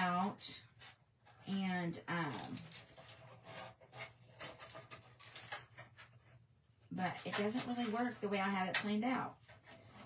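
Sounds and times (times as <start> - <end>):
paper rustling against board: 0.7 - 10.0.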